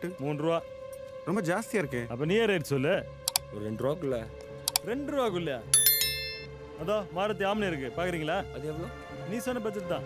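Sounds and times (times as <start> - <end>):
bright metallic clink: 5.8 - 6.5.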